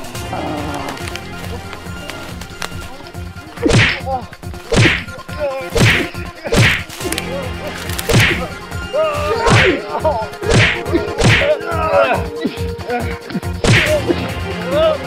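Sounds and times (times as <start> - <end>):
swishing punch whacks: 3.6 - 4.0, 4.7 - 5.1, 5.8 - 6.9, 8.1 - 8.5, 9.5 - 9.8, 10.5 - 11.5, 13.6 - 14.0.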